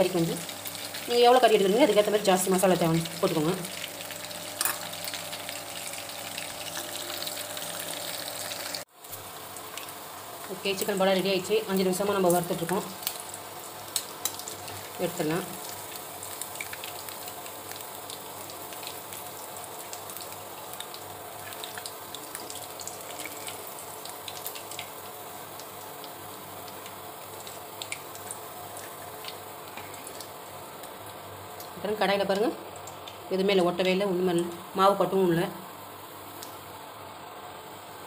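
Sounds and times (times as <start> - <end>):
food sizzling in hot oil: 0.0 - 37.0.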